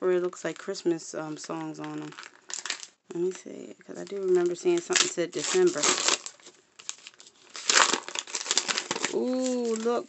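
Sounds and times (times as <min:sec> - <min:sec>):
wrapping paper crinkling: 0:00.5 - 0:10.0.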